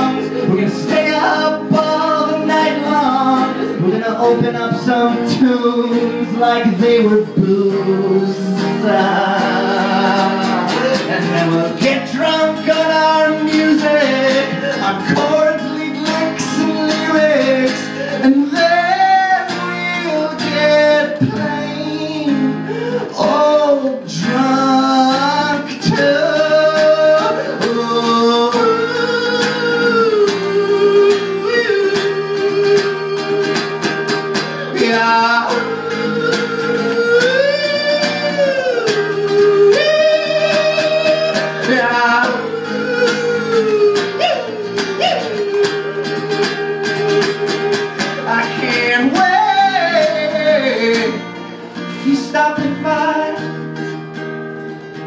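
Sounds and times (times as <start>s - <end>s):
man singing long sliding notes: 0.0s - 51.2s
strummed acoustic guitar: 0.0s - 55.0s.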